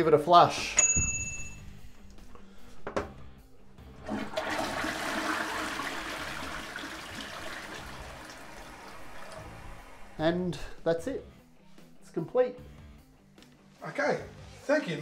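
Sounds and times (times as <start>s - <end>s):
water rushing into toilet bowl: 4.0s - 10.2s.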